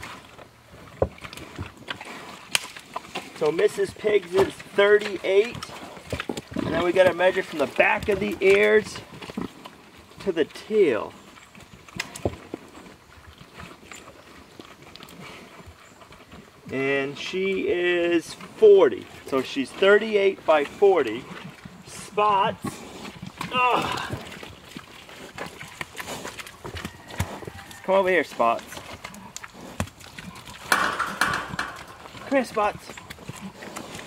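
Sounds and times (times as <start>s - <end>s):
pigs chomping grain: 0.0s - 34.0s
shuffling in mud: 0.0s - 34.0s.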